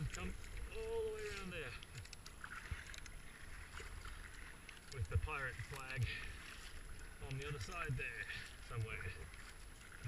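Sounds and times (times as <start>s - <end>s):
kayak paddle splashing: 0.0s - 10.0s
water moving along hull: 0.0s - 10.0s.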